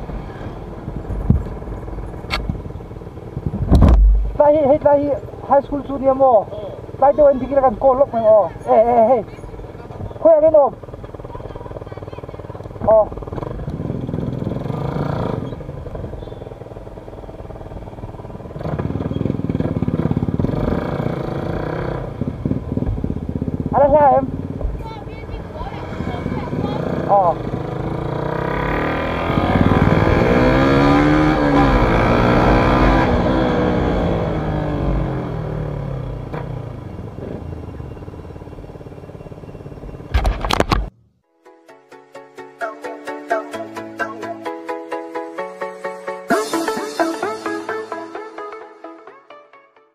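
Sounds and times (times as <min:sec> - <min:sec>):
motorcycle engine running: 0:00.0 - 0:41.0.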